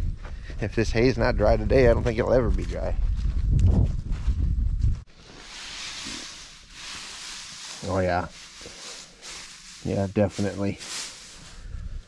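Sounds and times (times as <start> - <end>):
wind rumbling on microphone: 0.0 - 5.4, 11.4 - 12.0
hand rustling dry hay: 5.1 - 12.0.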